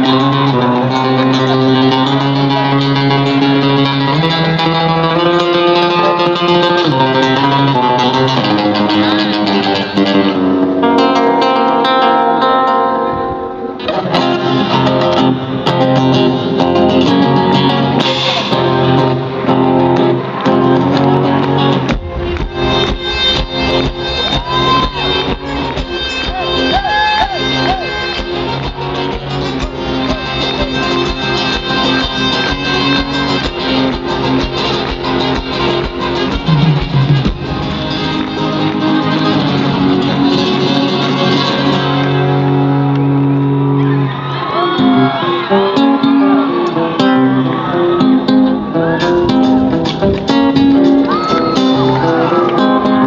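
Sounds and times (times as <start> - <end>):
amplified acoustic guitar playing: 0.0 - 53.0
steady beat: 21.1 - 40.3.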